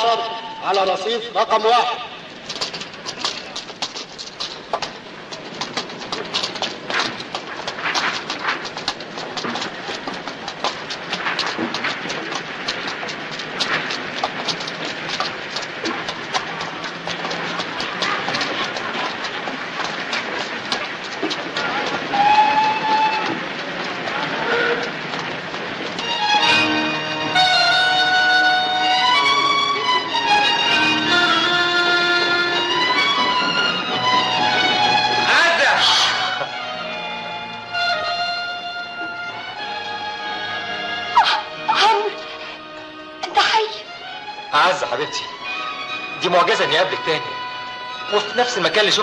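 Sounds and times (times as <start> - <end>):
train wheels clattering: 0.0 - 49.0
music: 26.0 - 49.0.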